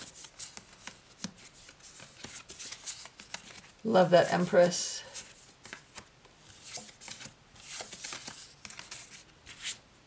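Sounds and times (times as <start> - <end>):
cards slapping and sliding: 0.0 - 3.7, 5.2 - 9.8.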